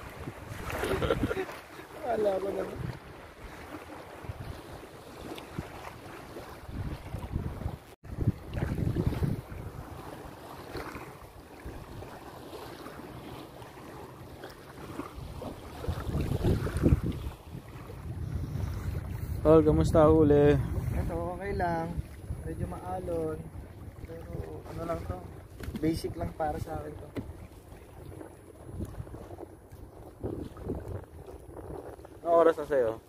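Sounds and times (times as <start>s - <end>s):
wind buffeting microphone: 0.0s - 13.3s, 14.8s - 33.0s
small waves lapping: 0.0s - 33.0s.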